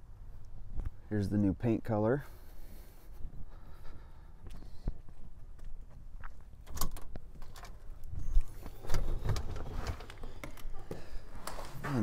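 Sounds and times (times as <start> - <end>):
front door opening: 6.6 - 12.0.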